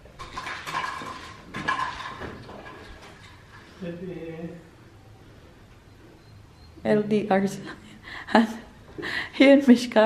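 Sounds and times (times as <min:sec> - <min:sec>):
plastic toys clattering: 0:00.1 - 0:03.5.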